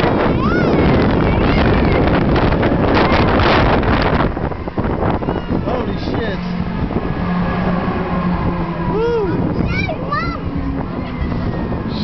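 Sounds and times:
roller coaster running on track: 0.0 - 12.0
wind buffeting microphone: 0.0 - 12.0.

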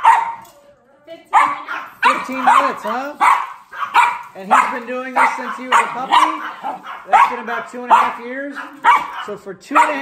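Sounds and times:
small dog barking: 0.0 - 0.5, 1.3 - 10.0.

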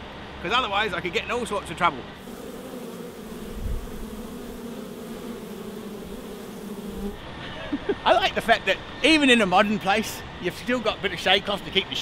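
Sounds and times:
honey bees buzzing: 2.2 - 7.9.

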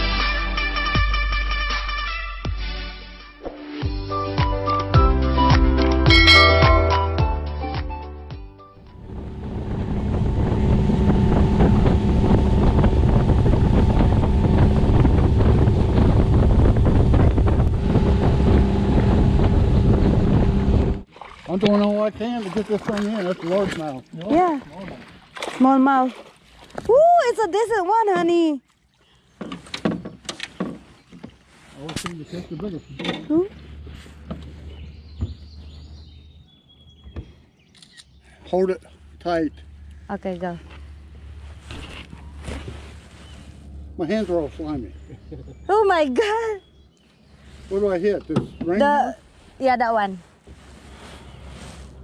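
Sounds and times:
low steady hum: 8.8 - 21.0
outboard motor running: 8.8 - 35.3, 38.5 - 49.4
wind buffeting microphone: 8.9 - 21.1.

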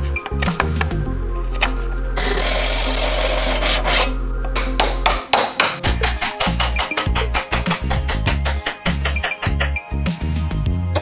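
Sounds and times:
low background music: 0.0 - 11.0
tool rasping on wood: 2.2 - 4.2.

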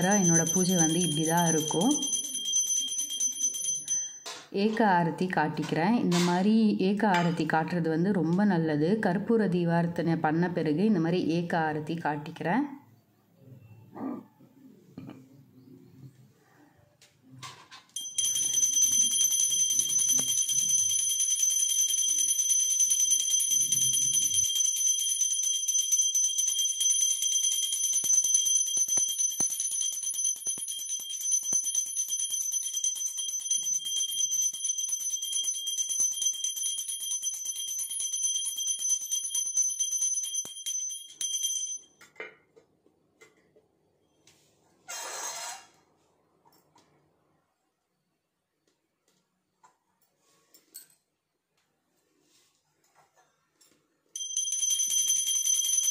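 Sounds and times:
hand bell ringing rapidly: 0.0 - 4.2, 18.0 - 41.9, 54.2 - 55.9
faint clinks: 0.0 - 4.5, 17.4 - 42.4, 49.6 - 51.2, 52.8 - 55.9.

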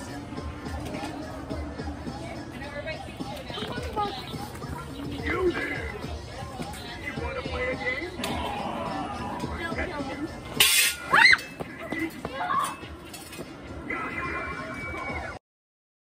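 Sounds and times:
voices: 0.0 - 15.4
shrill shriek: 10.8 - 11.5.

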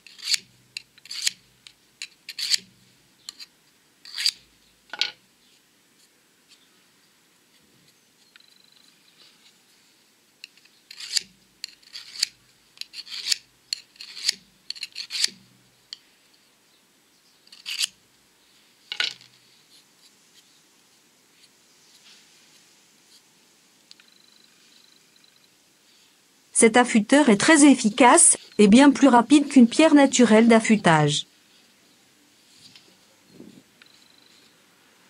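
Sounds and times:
knife scraping through sharpener: 0.0 - 1.4, 2.3 - 2.6, 3.3 - 4.4, 10.9 - 15.4, 17.5 - 17.9.

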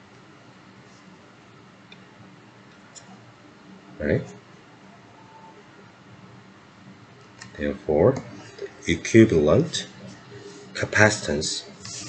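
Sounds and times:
faint high tone: 5.0 - 5.6
background hiss: 6.8 - 12.0.

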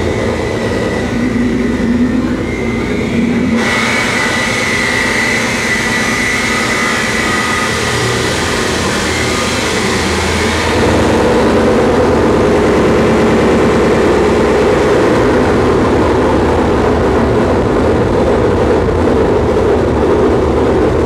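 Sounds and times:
distorted noise: 0.0 - 21.0
low drone: 0.0 - 21.0.

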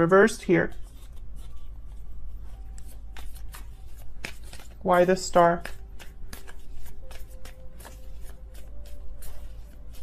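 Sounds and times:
low steady hum: 0.0 - 10.0
cards being shuffled: 0.3 - 10.0
papery rustles: 0.5 - 10.0.

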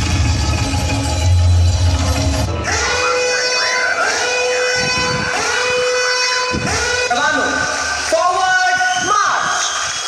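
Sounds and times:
backing music: 0.0 - 9.0.

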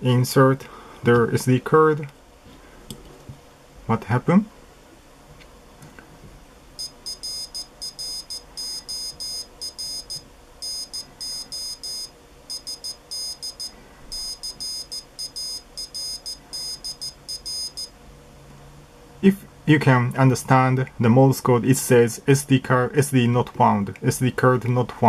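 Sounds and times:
buzzer beeping morse code: 6.8 - 17.9.

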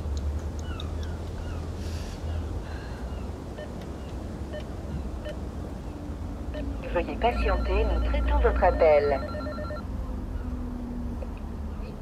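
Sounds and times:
pulsing electronic ring tone: 7.4 - 9.8.

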